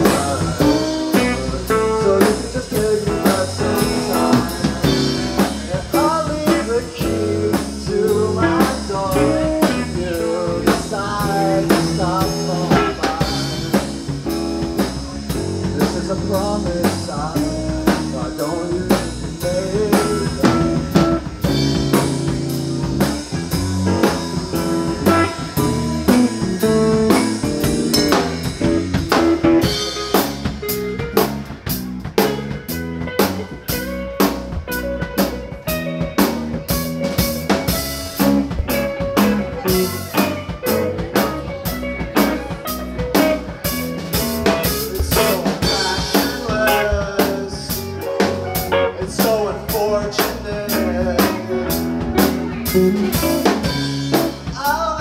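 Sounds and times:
bass guitar: 0:00.0 - 0:55.0
drum kit: 0:00.0 - 0:55.0
electric guitars: 0:00.0 - 0:55.0.

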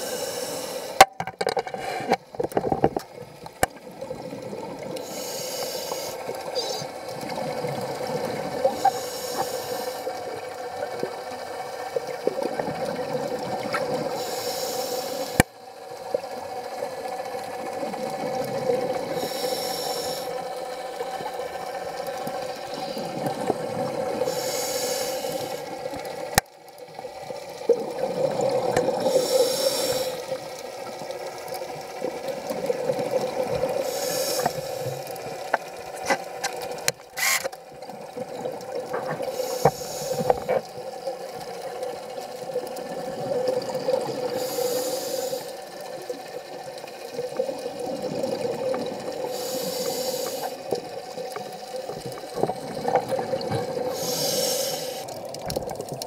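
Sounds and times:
exhaled bubbles underwater: 0:02.3 - 0:36.9, 0:37.6 - 0:56.0.

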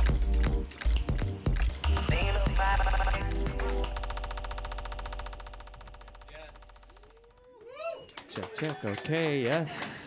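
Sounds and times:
fast buzzing pulse: 0:02.1 - 0:07.4.

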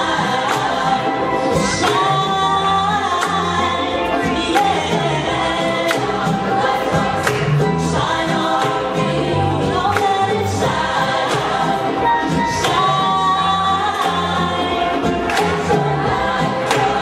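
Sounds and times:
gospel choir singing: 0:00.0 - 0:17.0
woman singing lead: 0:00.0 - 0:17.0.

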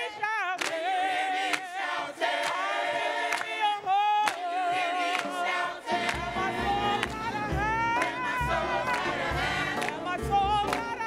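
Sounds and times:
choir singing a cappella: 0:00.0 - 0:11.0
hand claps: 0:00.6 - 0:00.9, 0:01.5 - 0:01.7, 0:02.4 - 0:02.6, 0:03.3 - 0:03.6, 0:04.2 - 0:04.5, 0:06.0 - 0:06.4, 0:07.0 - 0:08.3, 0:08.9 - 0:11.0.

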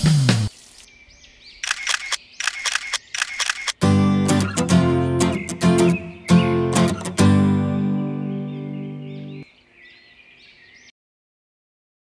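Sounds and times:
sharp clicks: 0:01.6 - 0:03.8
strummed acoustic guitar music: 0:03.8 - 0:09.4
sung music: 0:03.8 - 0:09.4.

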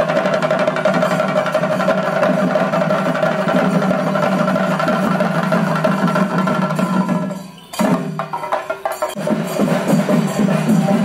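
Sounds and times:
drum ensemble playing: 0:00.0 - 0:11.0.

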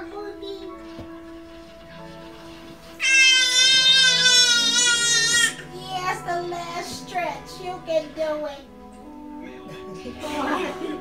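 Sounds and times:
baby squealing: 0:03.0 - 0:05.7.

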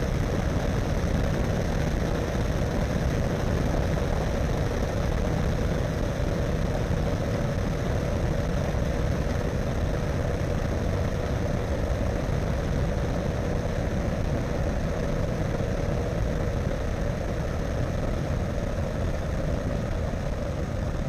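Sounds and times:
ultralight engine and propeller: 0:00.0 - 0:21.0.

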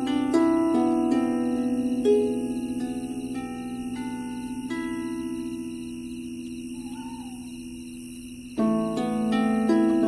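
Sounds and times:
harp notes ringing: 0:00.0 - 0:07.5
faint wavering chirp: 0:00.0 - 0:10.0.

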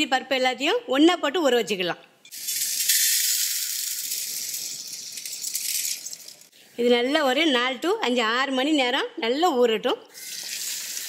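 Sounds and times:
grains rattling into metal bowl: 0:02.3 - 0:06.5.

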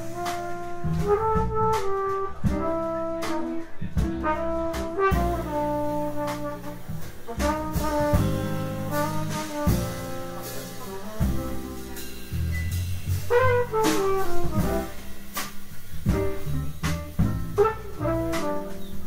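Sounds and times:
drum kit with cymbals: 0:00.0 - 0:19.0
piano: 0:00.0 - 0:19.0
trumpet melody: 0:00.0 - 0:19.0
upright bass: 0:00.0 - 0:19.0.

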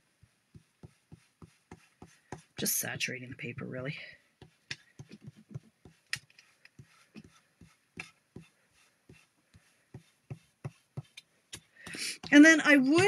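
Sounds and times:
tool dabbing onto cardstock: 0:00.2 - 0:02.7, 0:04.4 - 0:13.0.

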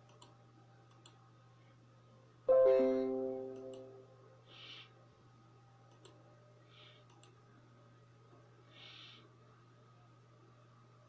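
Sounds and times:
computer mouse clicks: 0:00.0 - 0:01.2, 0:03.5 - 0:03.9, 0:05.9 - 0:06.2, 0:07.0 - 0:07.4.

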